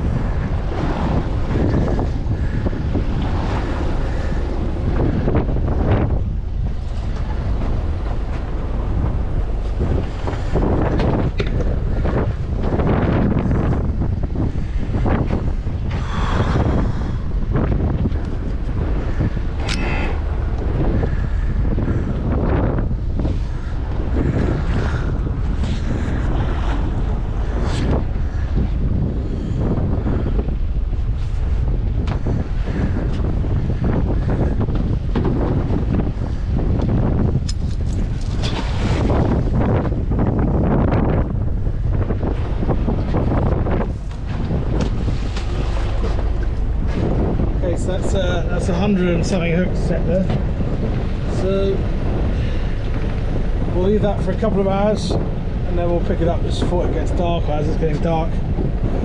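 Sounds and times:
choppy waves against hull: 0.0s - 59.0s
wind buffeting microphone: 0.0s - 59.0s.

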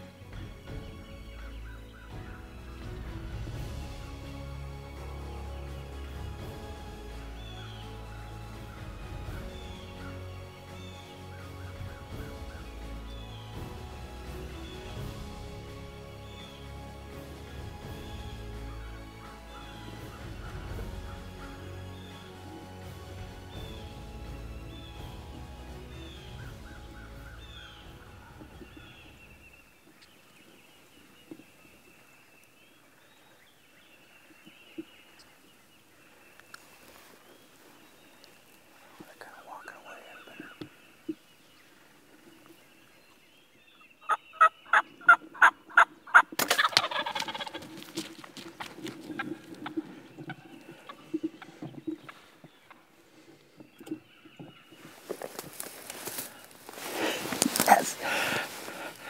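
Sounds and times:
music: 0.0s - 29.7s
faint bird calls: 18.0s - 48.1s
turkey gobbling: 44.1s - 52.8s.

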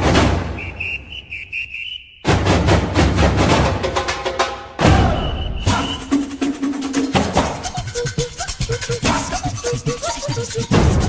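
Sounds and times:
music with drums and percussion: 0.0s - 0.6s, 2.2s - 11.0s
shrill whistle blasts: 0.4s - 2.4s, 4.8s - 6.4s.

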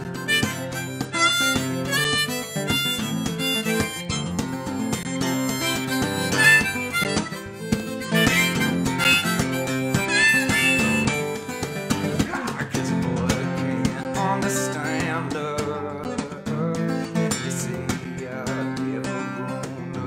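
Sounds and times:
harmonica: 0.0s - 15.3s
strummed acoustic guitar: 0.0s - 20.0s.

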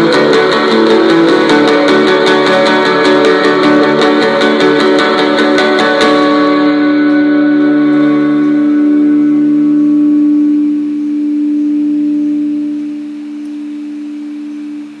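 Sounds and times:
guitar chord ringing: 0.0s - 15.0s.

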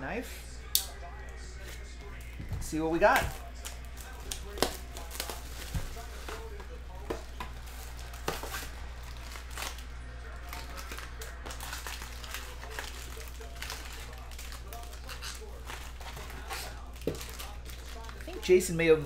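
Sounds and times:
plastic wrap crinkling: 1.0s - 19.0s.

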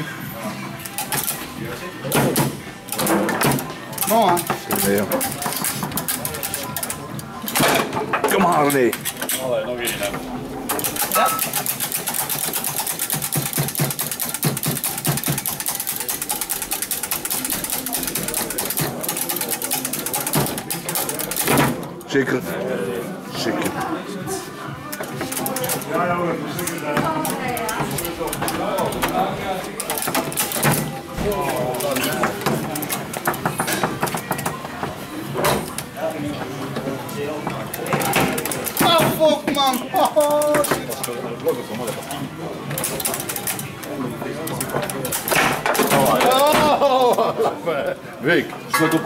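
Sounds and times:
foosball rods and players clattering: 0.0s - 22.4s, 24.8s - 47.8s, 48.4s - 49.0s
voices chattering: 0.0s - 49.0s.

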